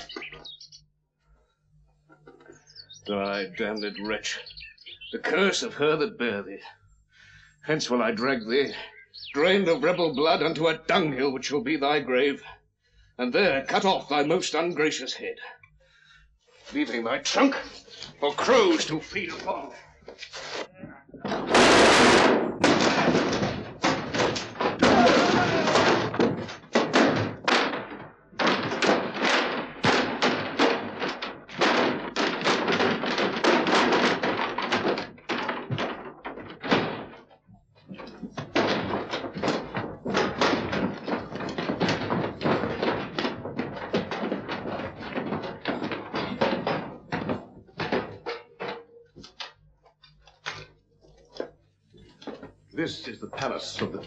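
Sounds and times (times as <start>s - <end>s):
thuds and knocks: 16.6s - 54.0s
men shouting: 24.8s - 25.9s.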